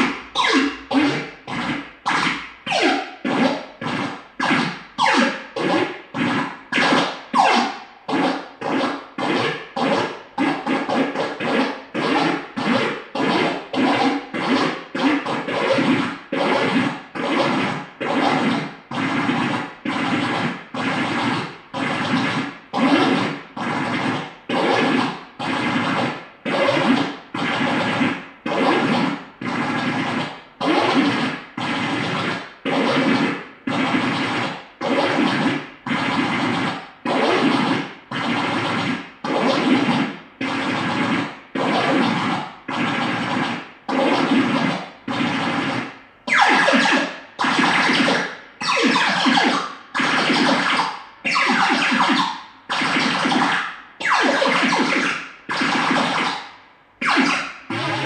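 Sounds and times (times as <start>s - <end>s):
noisy electronic synth pulses: 0.0s - 51.0s, 57.2s - 58.0s.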